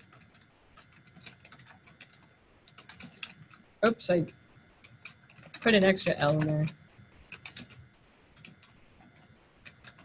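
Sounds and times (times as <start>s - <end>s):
keyboard typing: 0.0s - 10.0s.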